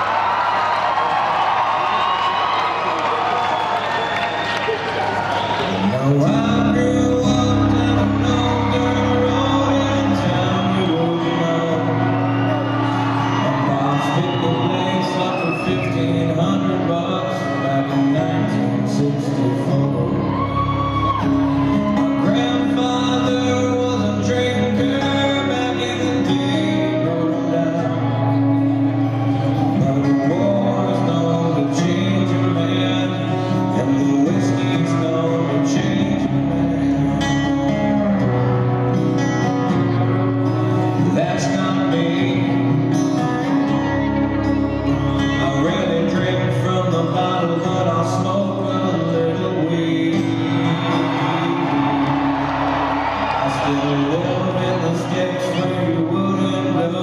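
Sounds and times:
audience cheering and whooping: 0.0s - 18.5s, 19.7s - 26.7s, 27.8s - 34.1s, 48.5s - 57.0s
acoustic guitar: 0.0s - 57.0s
gliding slide guitar notes: 5.8s - 57.0s.

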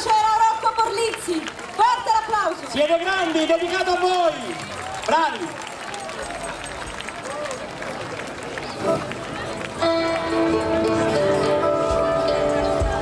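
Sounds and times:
crowd voices: 0.0s - 13.0s
band playing held notes: 8.8s - 13.0s.

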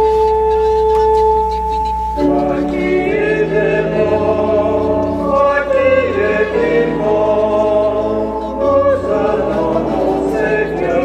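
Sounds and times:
church organ sustained chord: 0.0s - 11.0s.

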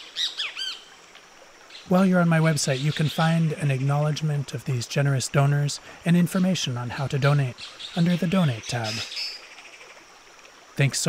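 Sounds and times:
bird calling: 0.0s - 0.8s, 6.3s - 9.8s
faint background hiss: 0.0s - 11.0s
person speaking: 1.9s - 9.1s.

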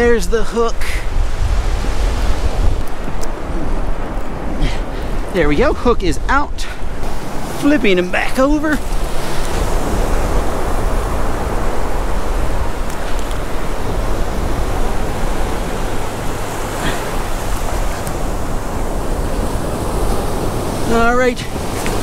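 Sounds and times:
ocean surf washing up beach: 0.0s - 22.0s
wind rumble on microphone: 0.0s - 22.0s.

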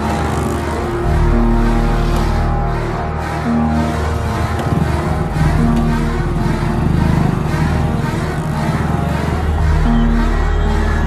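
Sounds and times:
suspenseful film score: 0.0s - 11.0s.

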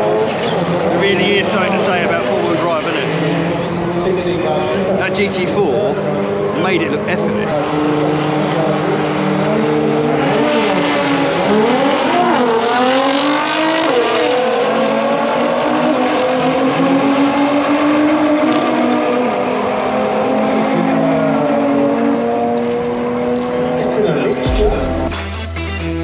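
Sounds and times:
car engines revving: 0.0s - 26.0s.

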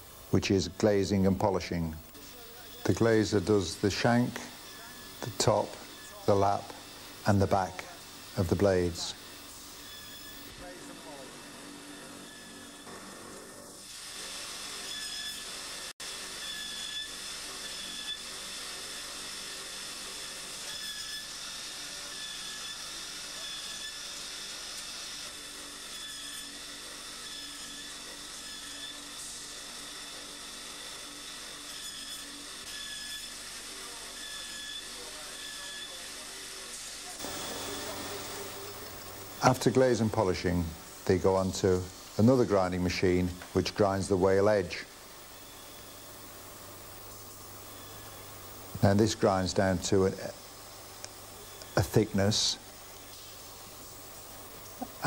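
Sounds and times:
grinding wheel hissing on blade: 0.0s - 55.0s.

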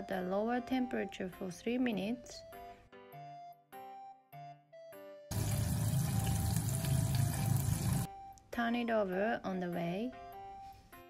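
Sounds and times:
background music: 0.0s - 11.0s
chicken deep-frying in oil: 5.3s - 8.1s.

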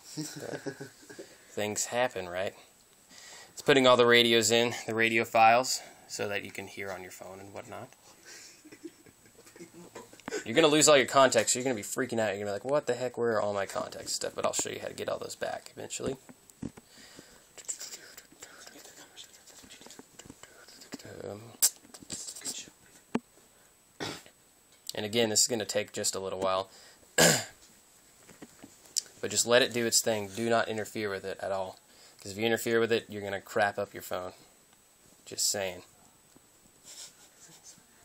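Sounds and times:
faint rustling or scratching: 12.8s - 23.6s, 36.7s - 38.0s
faint whispering: 17.6s - 22.8s.

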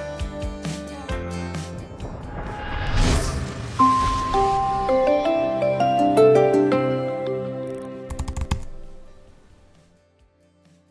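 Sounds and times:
logo sting music: 1.2s - 7.5s.

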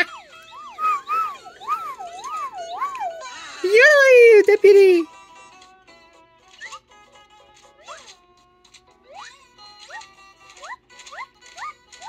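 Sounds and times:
slide whistles swooping: 0.0s - 3.0s.

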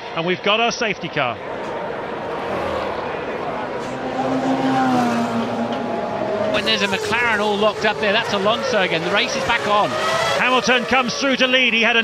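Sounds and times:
racing car engines: 0.0s - 12.0s.

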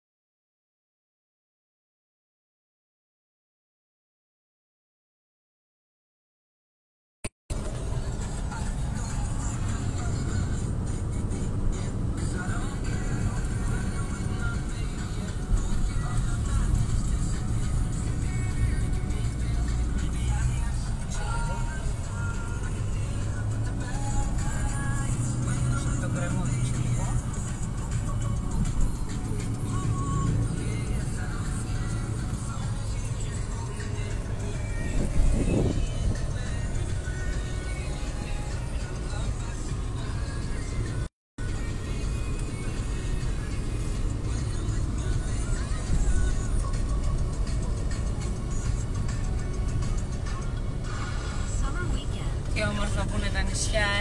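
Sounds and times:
car driving rumble: 7.5s - 54.0s
music: 7.5s - 54.0s.

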